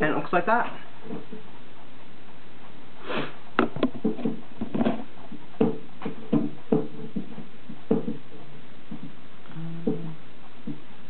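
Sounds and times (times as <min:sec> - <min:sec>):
steady hiss: 0:02.8 - 0:03.6
person sniffing: 0:03.0 - 0:03.4.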